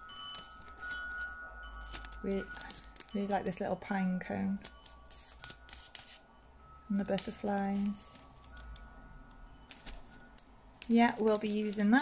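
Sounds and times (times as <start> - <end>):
plastic sheet crinkling: 0.3 - 3.3, 10.8 - 12.0.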